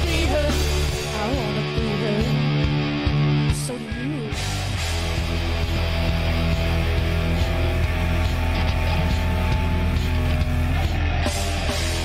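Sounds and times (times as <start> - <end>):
drums: 0.0 - 12.0
electric guitar: 0.0 - 12.0
heavy bass: 0.0 - 12.0.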